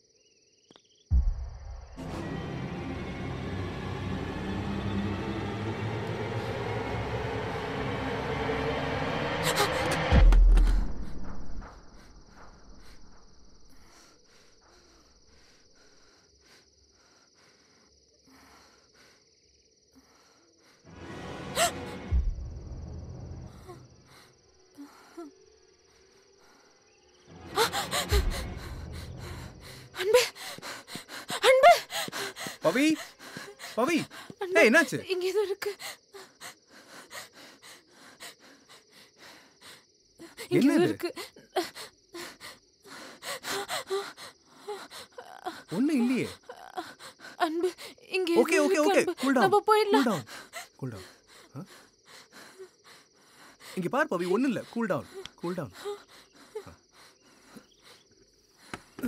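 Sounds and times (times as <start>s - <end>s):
rising drone: 1.8s - 11.4s.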